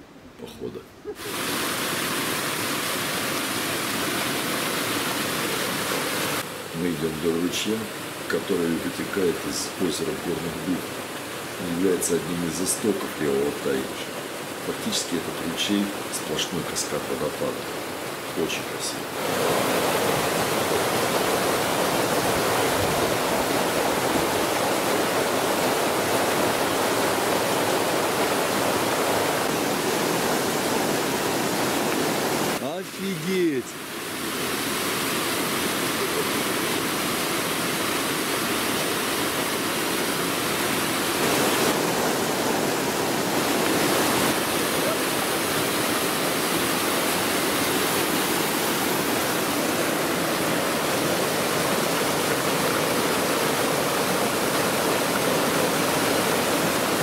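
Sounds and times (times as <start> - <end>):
stream rushing over rocks: 1.2 - 57.0.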